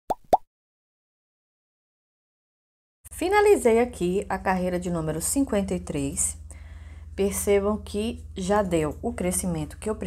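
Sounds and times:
rising pop sound effects: 0.1s - 0.5s.

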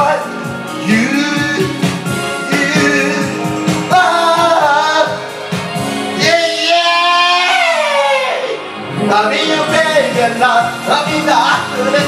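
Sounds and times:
pop song backing track: 0.0s - 12.0s.

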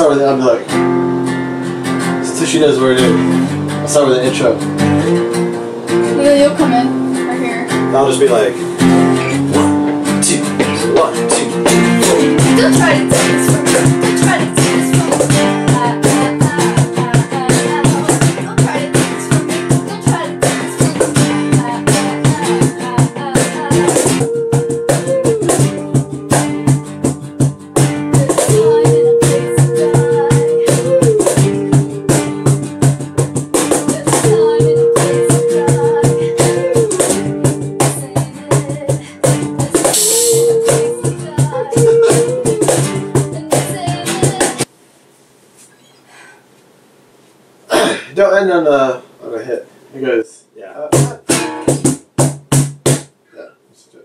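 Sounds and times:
strummed acoustic guitar: 0.0s - 44.7s, 50.9s - 53.2s
cajon slapped by hand: 10.6s - 29.7s, 30.3s - 44.7s, 50.9s - 53.2s.

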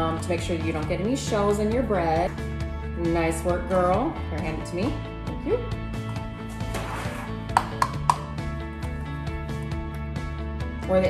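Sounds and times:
background music with held notes: 0.0s - 11.0s
egg tapping against bowl: 7.5s - 8.4s.

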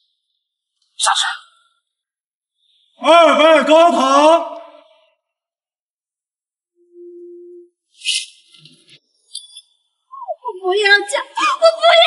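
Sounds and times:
high chirping glints: 6.8s - 10.6s.

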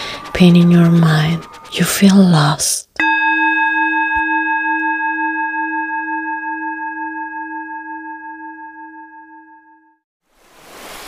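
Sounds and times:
singing bowl ringing: 0.0s - 10.0s.

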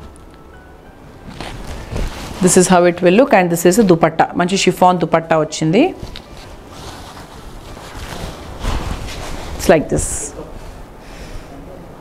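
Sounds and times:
fabric rustling: 1.2s - 11.0s.

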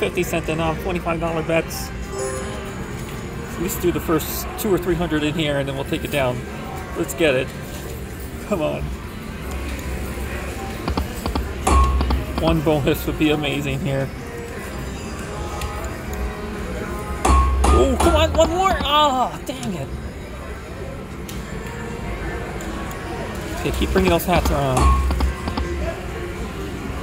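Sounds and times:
slot machine music: 2.1s - 3.0s, 23.6s - 25.7s
slot machine music and jingles: 2.1s - 3.0s
sharp clicks: 10.8s - 12.5s, 24.0s - 25.7s.

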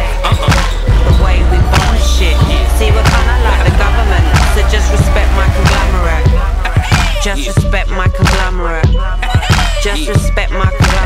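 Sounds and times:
hip-hop music with heavy bass: 0.0s - 11.0s.

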